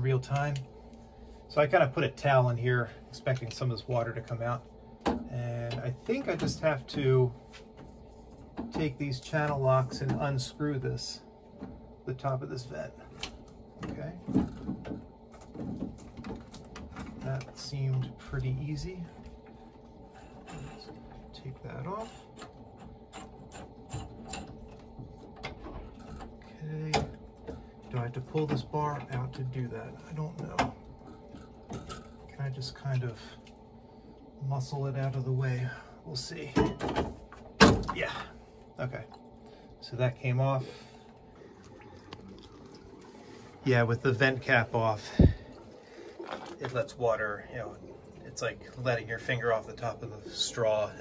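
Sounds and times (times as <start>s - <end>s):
water trickling into bucket: 0.2s - 36.6s, 37.2s - 51.0s
vent cap clicking and scraping: 13.2s - 18.5s.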